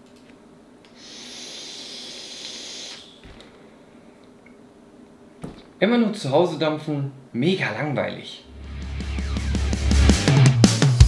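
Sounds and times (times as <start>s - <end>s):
e-cigarette hiss: 0.9s - 3.3s.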